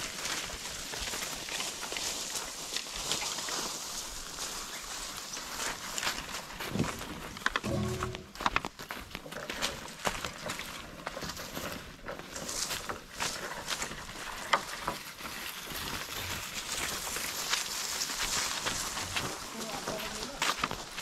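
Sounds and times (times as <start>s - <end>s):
footsteps crunching through dry leaves: 0.0s - 21.0s
rustling undergrowth: 0.0s - 21.0s.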